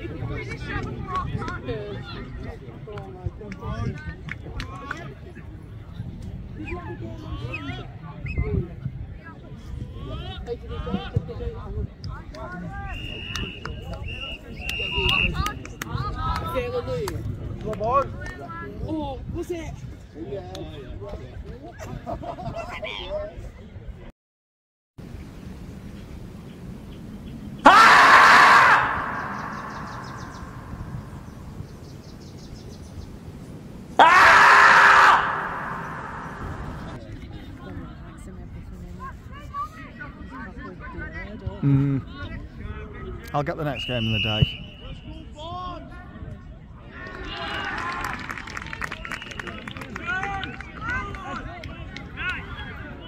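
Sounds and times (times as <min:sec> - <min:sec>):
marmot screaming: 0:27.6 - 0:30.8, 0:34.0 - 0:36.9
people calling and talking: 0:27.6 - 0:31.6, 0:34.0 - 0:46.9.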